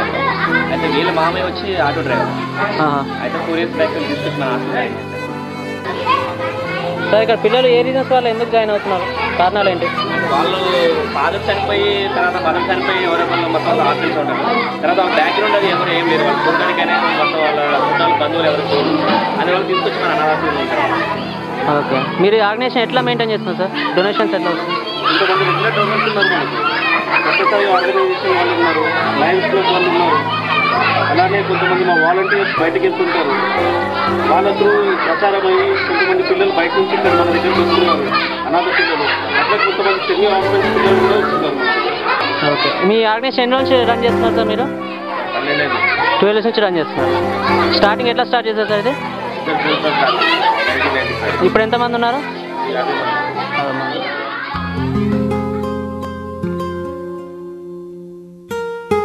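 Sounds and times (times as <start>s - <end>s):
people talking: 0.0s - 5.0s, 5.9s - 54.4s
chatter of voices: 0.0s - 56.6s.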